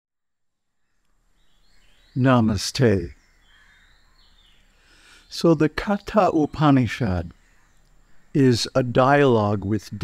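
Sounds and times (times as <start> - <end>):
faint outdoor background noise: 0.2 - 10.0.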